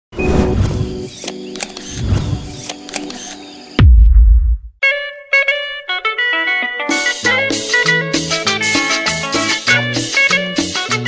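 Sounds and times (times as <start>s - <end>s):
sharp clicks: 1.1s - 3.4s
sudden deep boom: 3.8s - 4.8s.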